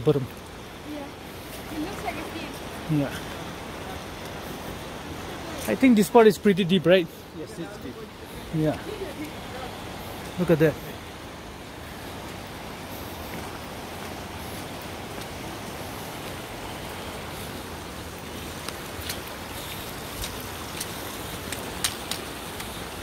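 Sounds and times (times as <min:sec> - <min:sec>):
river rushing: 0:00.0 - 0:23.0.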